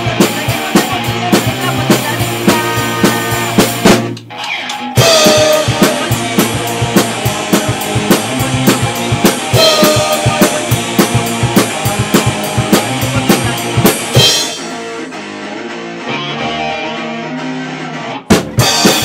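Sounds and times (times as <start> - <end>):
drum kit beat: 0.0 - 19.0
held guitar and bass notes: 0.0 - 19.0
rock song: 0.0 - 19.0.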